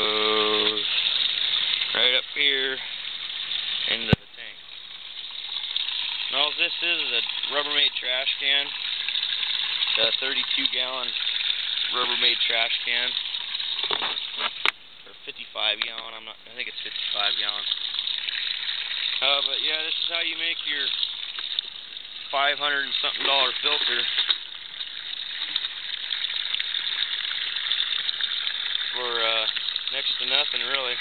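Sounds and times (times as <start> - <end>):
water pouring and splashing: 0.0 - 14.8, 15.6 - 31.0.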